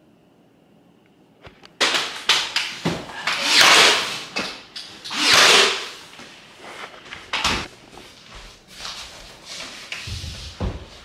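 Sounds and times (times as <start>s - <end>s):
knocks and clicks of flooring: 9.9s - 11.0s.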